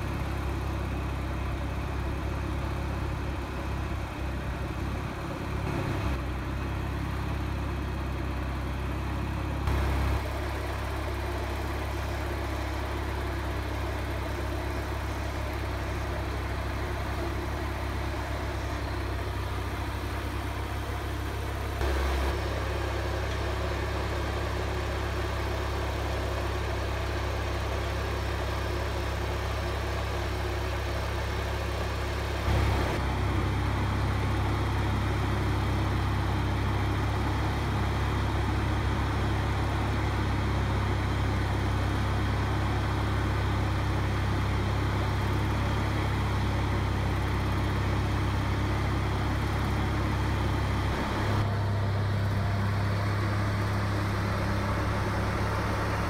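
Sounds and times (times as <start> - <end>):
garden tractor engine running: 0.0 - 56.0.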